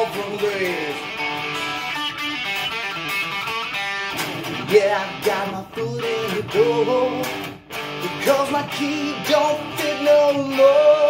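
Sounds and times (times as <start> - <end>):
electric guitar strummed chords: 0.0 - 11.0.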